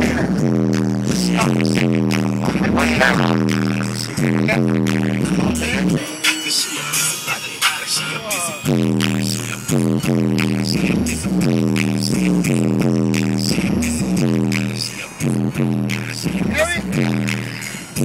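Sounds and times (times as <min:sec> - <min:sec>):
music on a car stereo: 0:00.0 - 0:18.0.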